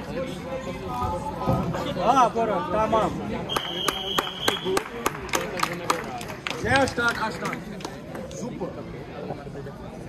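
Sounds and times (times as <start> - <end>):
referee's whistle: 3.5 - 4.8.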